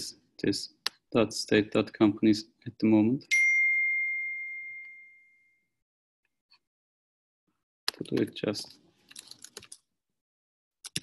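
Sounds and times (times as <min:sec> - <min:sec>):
bell-like ding: 0:03.3 - 0:05.7.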